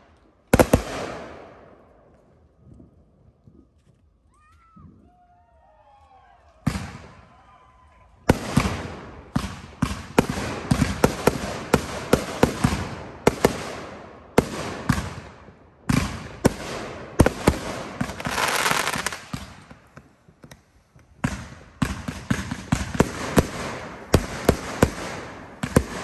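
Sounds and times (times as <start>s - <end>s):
fireworks bangs: 0.0s - 2.5s, 6.5s - 26.0s.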